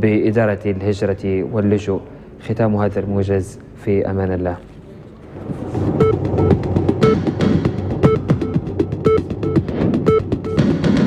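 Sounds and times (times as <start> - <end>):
news theme music: 5.4 - 11.0
quick percussion hits: 5.4 - 11.0.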